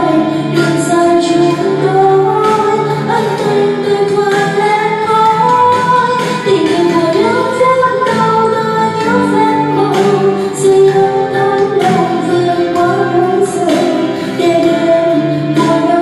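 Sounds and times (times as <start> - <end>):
pop ballad backing track: 0.0 - 16.0.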